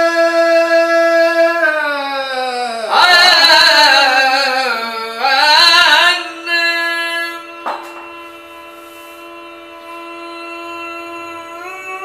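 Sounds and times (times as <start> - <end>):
steady drone note: 6.2 - 12.0.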